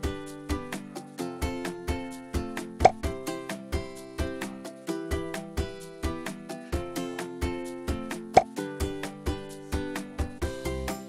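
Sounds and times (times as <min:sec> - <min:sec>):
plucked music over a beat: 0:00.0 - 0:11.0
short bright pop: 0:02.8 - 0:03.0.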